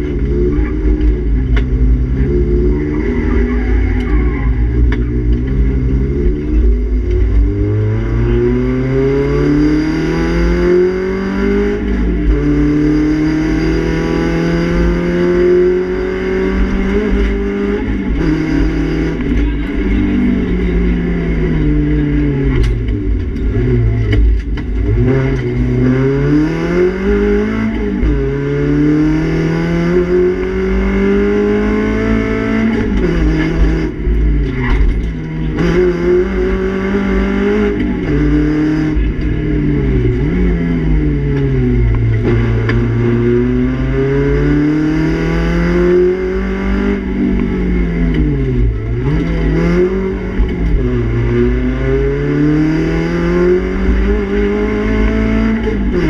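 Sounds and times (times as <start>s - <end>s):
rally car engine revving: 0.0s - 56.0s.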